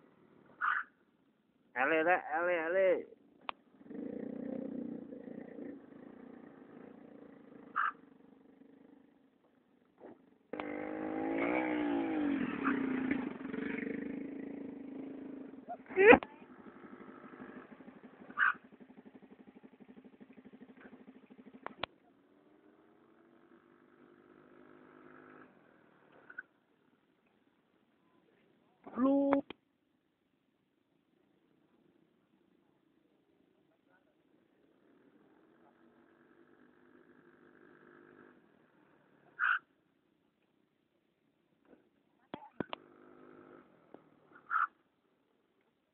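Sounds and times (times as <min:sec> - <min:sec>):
scooter engine revving: 0:03.7 - 0:09.0, 0:10.0 - 0:22.0, 0:22.6 - 0:26.5, 0:34.8 - 0:38.5, 0:42.6 - 0:44.7.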